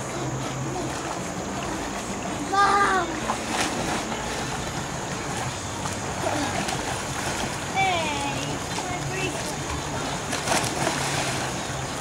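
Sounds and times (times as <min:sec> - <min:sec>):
pool water splashing and churning: 0:00.0 - 0:12.0.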